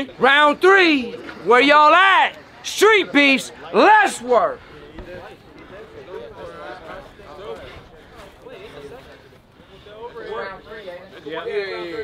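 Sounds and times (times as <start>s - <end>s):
loud man's voice: 0.0s - 4.6s
men talking and calling out: 0.0s - 12.0s.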